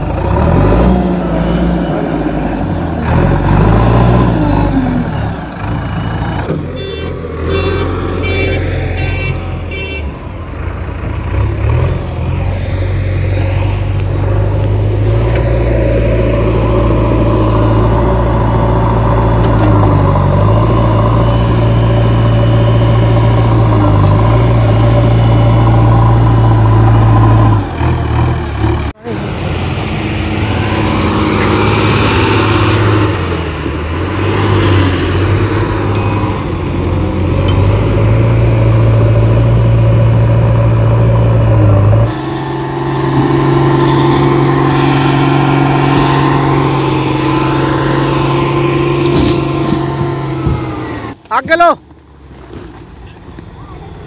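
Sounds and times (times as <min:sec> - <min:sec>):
heavy diesel engines running: 0:00.0 - 0:54.0.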